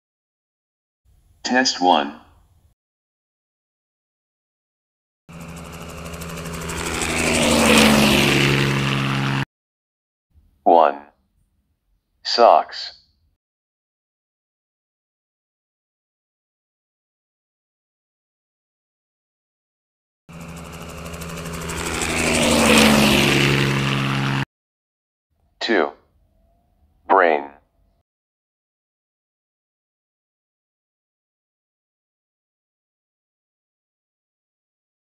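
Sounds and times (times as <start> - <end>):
propeller aircraft flyby: 5.3 - 9.5, 20.3 - 24.5.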